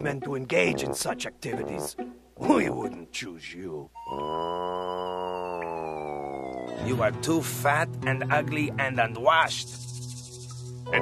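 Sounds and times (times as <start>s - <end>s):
long held vocal note: 4.0s - 6.9s.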